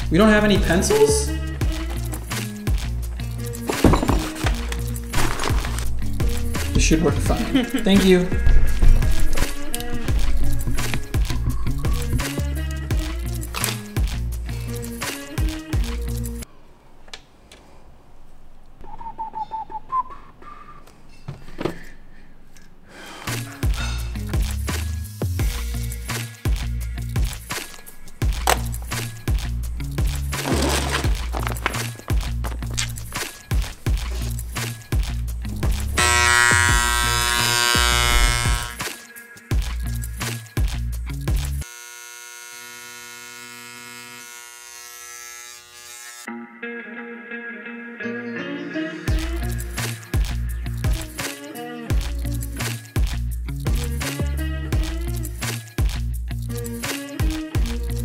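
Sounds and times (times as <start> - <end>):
person whistling: 11.3 - 12.4, 18.8 - 20.9
engraver pen buzzing: 36.0 - 38.8, 41.6 - 46.3
background music with guitar: 46.3 - 58.0.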